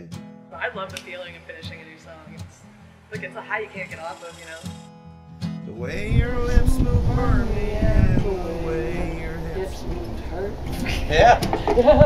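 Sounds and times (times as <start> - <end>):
people talking: 0.6 - 2.5, 3.1 - 4.7, 5.8 - 12.0
person laughing: 10.7 - 12.0.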